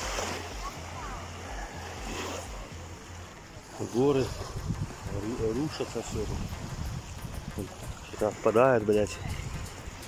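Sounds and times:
sea surf: 0:00.0 - 0:10.0
wind rumble on microphone: 0:04.2 - 0:10.0.

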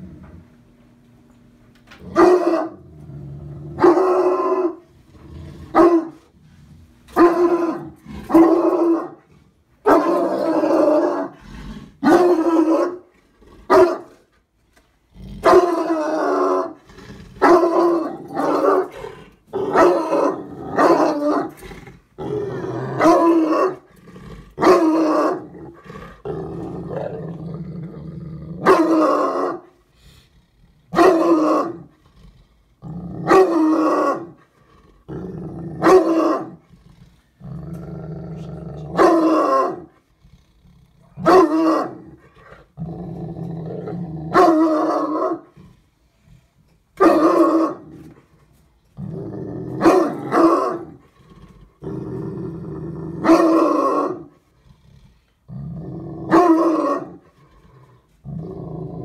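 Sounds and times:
dog growling: 0:01.9 - 0:13.8, 0:15.1 - 0:46.4, 0:48.9 - 0:59.0
dog barking loudly: 0:02.1 - 0:02.8, 0:03.8 - 0:04.8, 0:05.7 - 0:06.2, 0:07.1 - 0:09.2, 0:09.8 - 0:11.3, 0:12.0 - 0:13.1, 0:13.7 - 0:14.2, 0:15.4 - 0:16.6, 0:19.7 - 0:21.5, 0:23.0 - 0:23.8, 0:24.6 - 0:25.5, 0:28.6 - 0:29.6, 0:30.9 - 0:31.8, 0:33.2 - 0:34.4, 0:35.8 - 0:36.6, 0:38.9 - 0:39.9, 0:41.2 - 0:42.0, 0:44.3 - 0:45.5, 0:47.0 - 0:47.9, 0:49.8 - 0:51.0, 0:53.2 - 0:54.3, 0:56.3 - 0:57.2.

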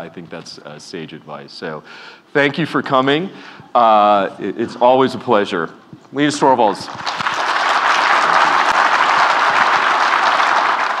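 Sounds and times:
audience applauding: 0:06.9 - 0:11.0.

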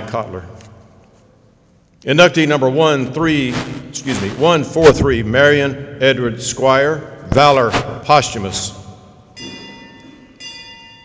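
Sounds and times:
bell ringing: 0:09.3 - 0:11.0.

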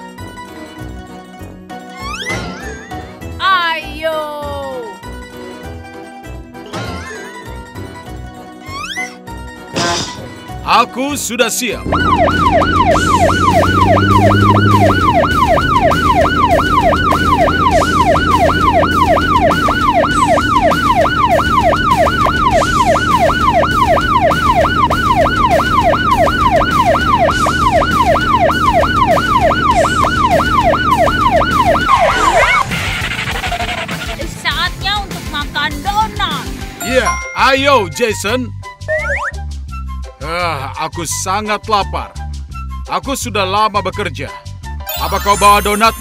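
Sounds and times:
police siren yelping: 0:11.8 - 0:34.1, 0:44.9 - 0:46.0.

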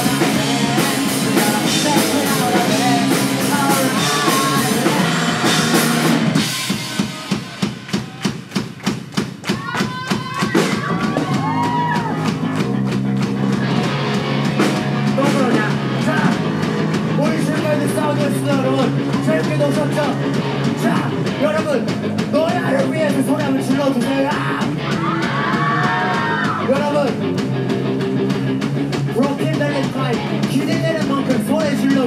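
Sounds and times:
live rock band playing: 0:00.0 - 0:32.0.

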